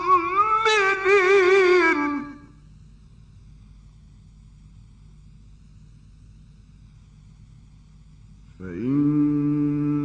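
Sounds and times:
faint low hum: 0.0s - 10.0s
light hiss: 0.0s - 10.0s.

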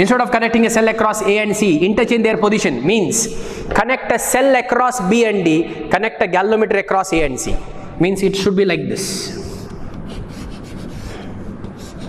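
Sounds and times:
chalk scratching on blackboard: 9.4s - 12.0s.

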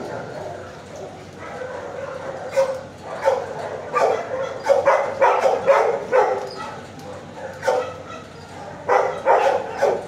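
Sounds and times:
dog barking: 0.4s - 10.0s.

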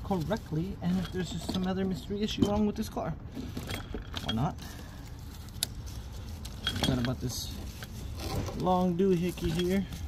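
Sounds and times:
wrench clinking on metal: 6.5s - 7.5s.

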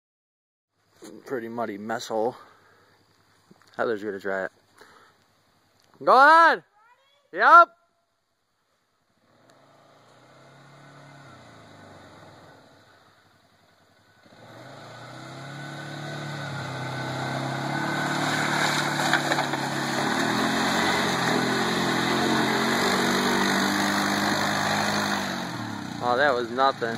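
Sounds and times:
quad bike engine revving: 9.2s - 12.7s, 14.2s - 26.9s.

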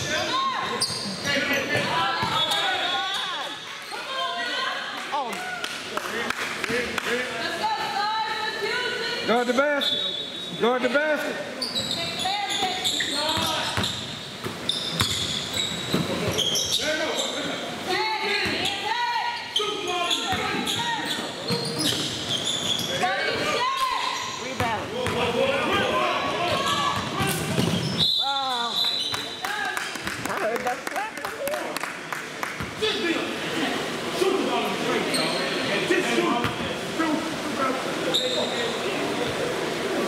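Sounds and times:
sneaker squeaks: 0.0s - 4.2s, 9.4s - 10.6s, 11.6s - 17.6s, 18.4s - 25.3s, 26.4s - 29.4s, 35.0s - 35.7s, 38.1s - 38.8s.

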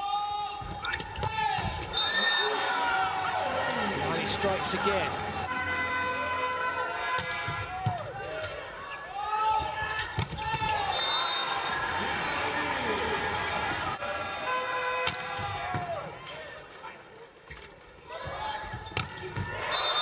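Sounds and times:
crowd cheering: 1.1s - 17.0s, 19.4s - 20.0s
volleyball hits: 15.0s - 16.1s.

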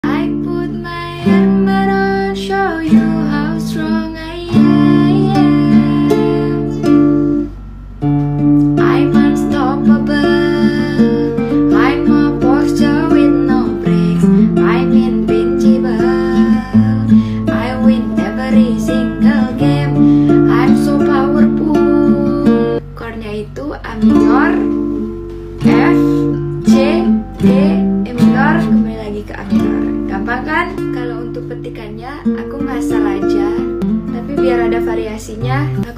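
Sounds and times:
woman singing: 0.0s - 7.2s, 8.7s - 24.9s, 25.6s - 35.9s
classical guitar picked chords: 0.0s - 35.9s.

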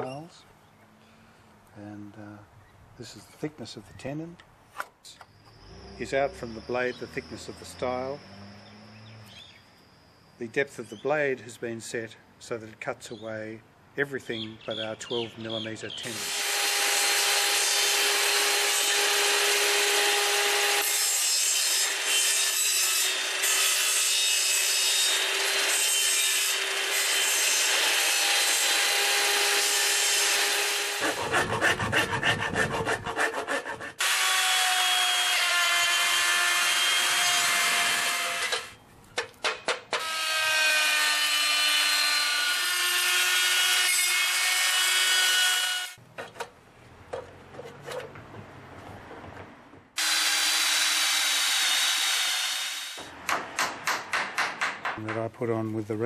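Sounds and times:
table saw cutting wood: 16.0s - 38.7s, 39.9s - 46.0s, 50.0s - 53.0s
hand tool strokes on wood: 31.0s - 34.0s.

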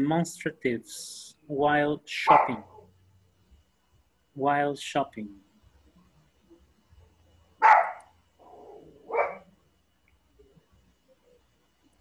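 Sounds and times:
dog barking: 2.3s - 2.7s, 7.6s - 9.5s.

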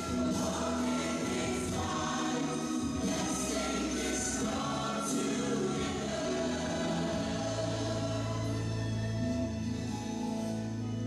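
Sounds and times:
band accompaniment: 0.0s - 8.2s
choir singing gospel song: 0.0s - 9.0s.

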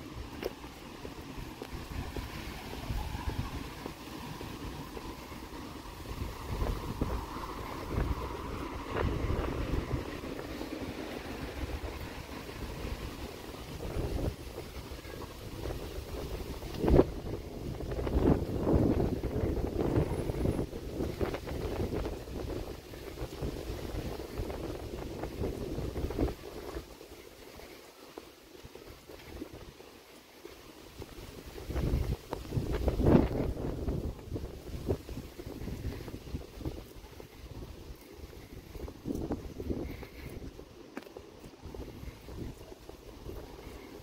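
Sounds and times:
city street ambience: 0.0s - 44.0s
wind buffeting microphone: 0.0s - 44.0s.

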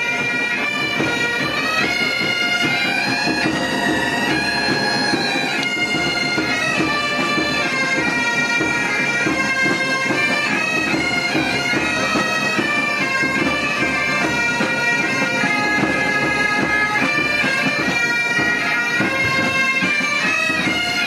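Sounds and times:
bagpipes playing over a drone: 0.0s - 21.0s.

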